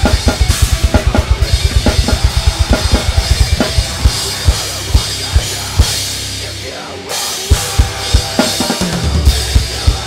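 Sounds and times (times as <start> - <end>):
bass drum strokes: 0.0 - 6.4
drum kit playing: 0.0 - 10.0
recorded song track: 0.0 - 10.0.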